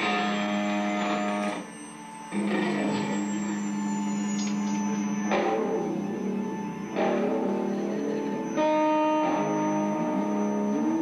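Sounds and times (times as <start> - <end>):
buzzy synthesizer tone: 0.0 - 11.0.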